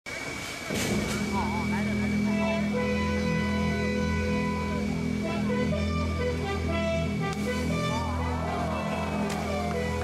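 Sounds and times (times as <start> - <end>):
crowd chatter: 0.1 - 10.0
steady low hum: 0.1 - 10.0.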